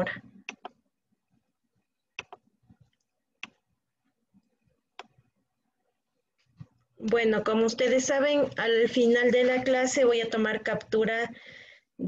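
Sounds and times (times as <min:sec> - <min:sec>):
computer mouse clicks: 0:00.4 - 0:00.8, 0:02.2 - 0:03.7, 0:05.0 - 0:05.2.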